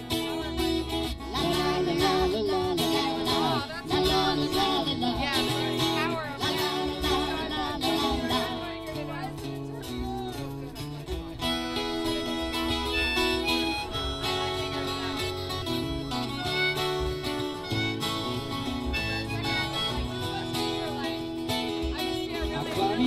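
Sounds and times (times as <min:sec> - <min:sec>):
harmonica melody: 0:00.0 - 0:23.0
strummed acoustic guitars: 0:00.0 - 0:23.0.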